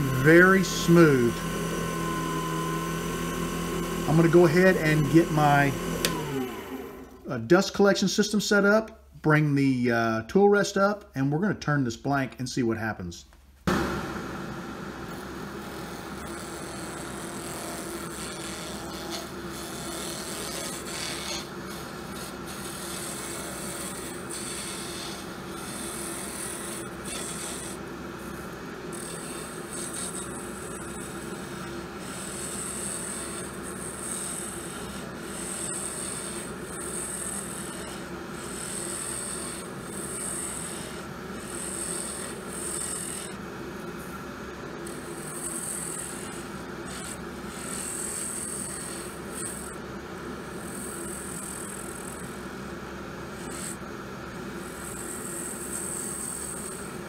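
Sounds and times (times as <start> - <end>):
turning tool hissing on wood: 0.0 - 1.5
lathe motor hum: 0.0 - 7.3, 13.7 - 57.0.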